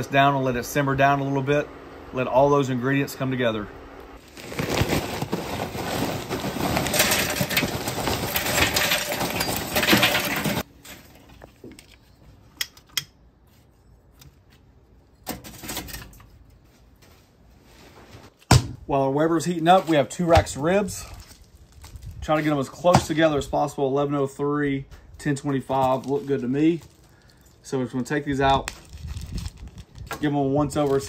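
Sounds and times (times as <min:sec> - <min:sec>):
charcoal poured into metal starter: 0:04.2 - 0:11.2.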